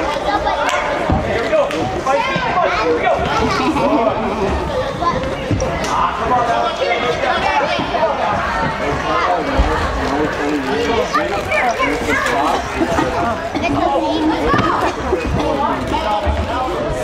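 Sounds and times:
voices calling out in echoing hall: 0.0s - 17.0s.

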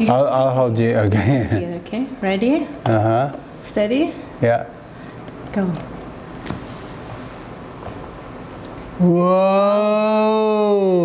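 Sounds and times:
equipment hum: 0.0s - 11.0s.

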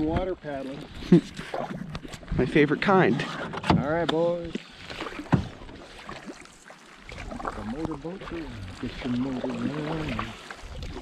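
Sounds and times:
paddle strokes swishing through water: 0.0s - 11.0s.

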